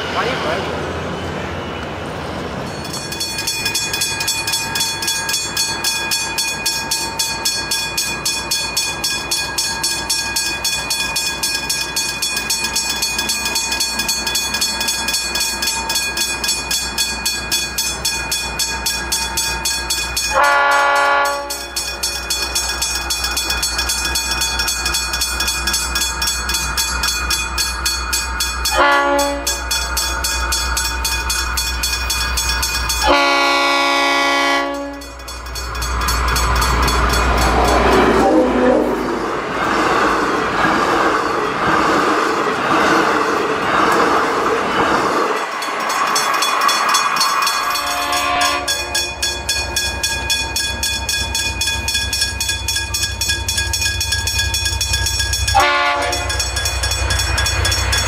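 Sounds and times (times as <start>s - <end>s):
train wheels rushing on rails: 0.0s - 58.0s
train horn blasts: 20.3s - 21.7s, 28.7s - 29.6s, 33.0s - 35.2s, 38.1s - 39.1s, 47.6s - 49.0s, 55.6s - 56.4s.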